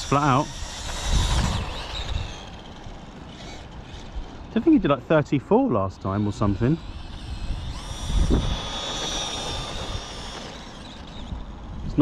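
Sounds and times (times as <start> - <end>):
rc car motor whine: 0.0 - 12.0.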